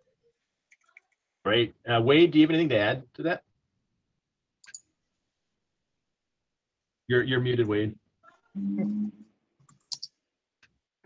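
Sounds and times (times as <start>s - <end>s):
person holding a vocal syllable: 8.6s - 9.1s.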